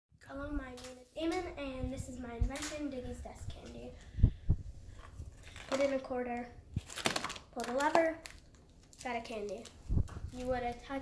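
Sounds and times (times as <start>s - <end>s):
boy speaking: 0.2s - 4.0s, 5.6s - 6.6s, 7.5s - 8.3s, 9.0s - 11.0s.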